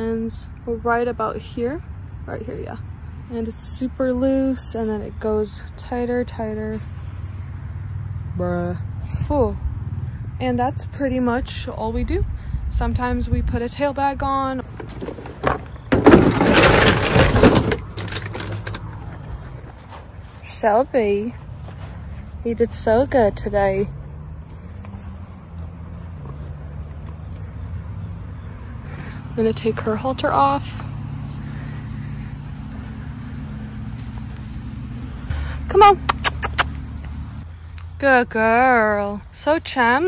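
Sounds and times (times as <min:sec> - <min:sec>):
low engine hum: 0:00.0 - 0:40.0
footsteps on gravel: 0:14.6 - 0:20.7, 0:21.3 - 0:22.3, 0:32.4 - 0:35.2
plastic caddy clattering: 0:14.7 - 0:18.9.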